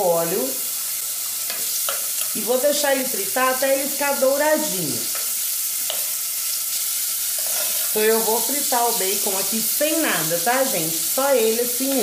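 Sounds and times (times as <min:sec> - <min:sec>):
bacon sizzling in oil: 0:00.0 - 0:12.0
spoon stirring in pot: 0:07.3 - 0:08.0.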